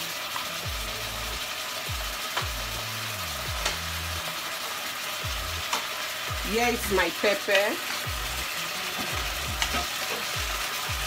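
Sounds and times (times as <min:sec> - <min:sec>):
meat and onion sizzling: 0:00.0 - 0:11.0.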